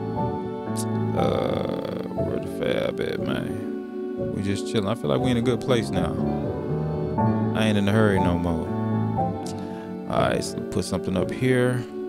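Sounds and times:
synth pad chords: 0.0 - 10.7
bright chord layer: 0.0 - 12.0.

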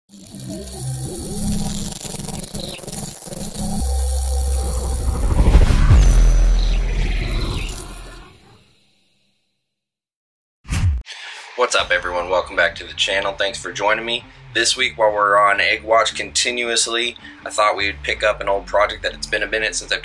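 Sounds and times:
deep rumbling bass: 3.5 - 8.2
cinematic whooshes: 3.8 - 8.6.

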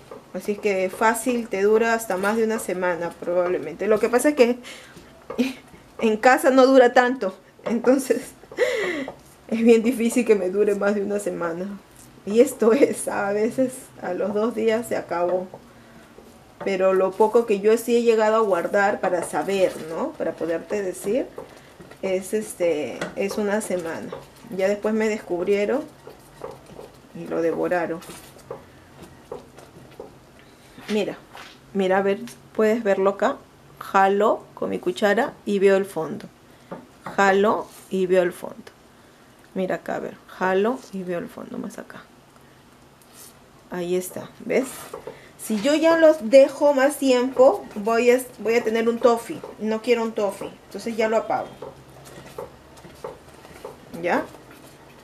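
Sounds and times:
wooden spoon stirring: 0.0 - 31.4, 44.4 - 55.0.

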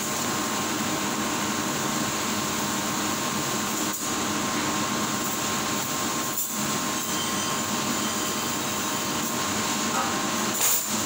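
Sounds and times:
kitchen machine rushing hum: 0.0 - 11.0.

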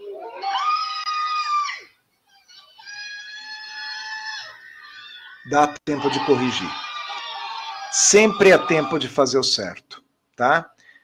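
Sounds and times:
high-pitched screams: 0.0 - 9.2.

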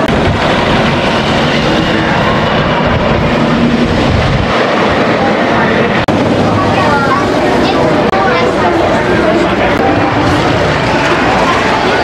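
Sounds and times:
roller coaster rumbling on track: 0.0 - 12.0
people's voices: 4.8 - 12.0.

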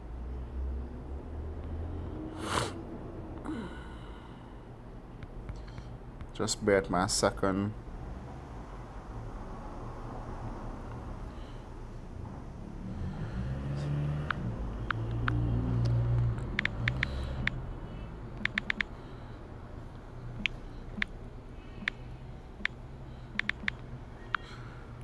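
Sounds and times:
touchscreen typing taps: 16.5 - 17.6, 18.4 - 18.9, 20.4 - 21.1, 23.4 - 24.5.

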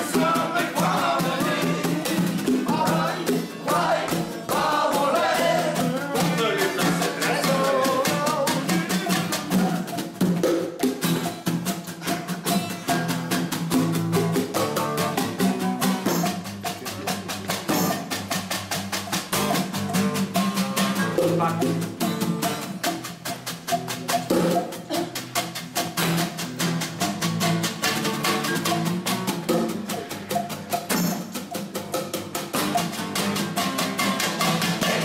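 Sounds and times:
group singing folk song: 0.0 - 10.4, 32.7 - 35.0
hand drum beaten fast: 0.0 - 35.0.

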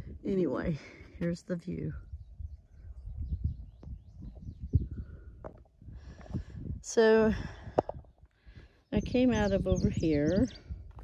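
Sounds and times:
low rumble on microphone: 1.8 - 11.0
faint bird chirps: 1.9 - 5.4.

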